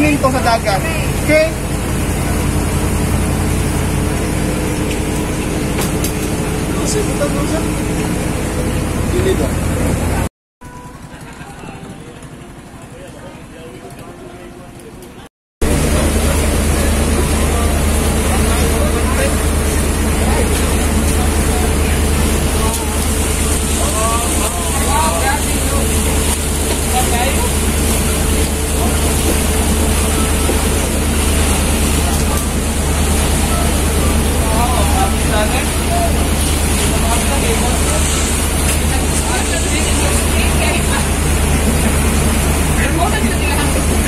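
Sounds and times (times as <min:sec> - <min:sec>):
boat engine droning: 0:00.0 - 0:44.0.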